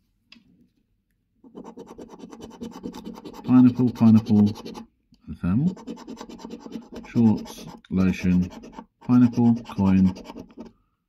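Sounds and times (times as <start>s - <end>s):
coin scratching scratch card: 1.5s - 4.9s, 5.7s - 10.7s.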